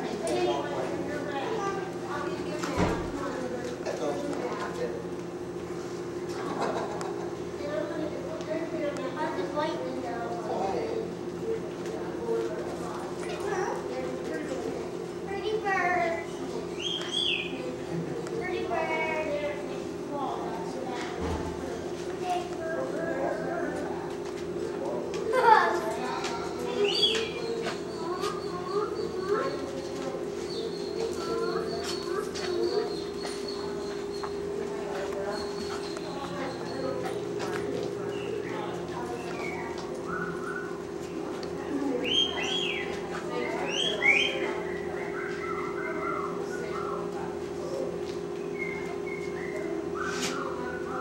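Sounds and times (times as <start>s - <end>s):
low voices: 0.0s - 51.0s
steady hum: 0.0s - 51.0s
dog whimpering: 27.0s - 34.4s, 35.0s - 37.2s, 39.4s - 40.8s, 43.6s - 47.1s.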